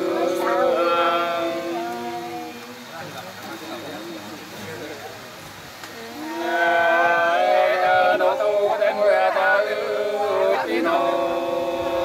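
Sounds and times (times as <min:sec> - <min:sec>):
unaccompanied folk singing: 0:00.0 - 0:04.5, 0:05.9 - 0:12.0.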